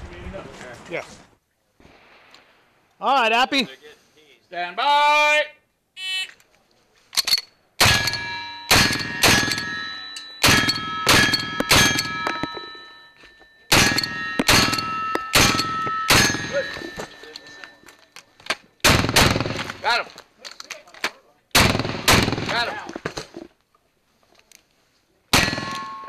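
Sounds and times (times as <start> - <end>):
steel target ringing: 7.8 - 17.9, 25.4 - 26.0.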